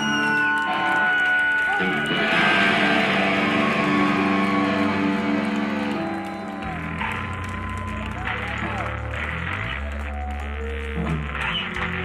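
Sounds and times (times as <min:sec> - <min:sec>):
distorted electric guitars ringing chord: 0:00.0 - 0:07.6.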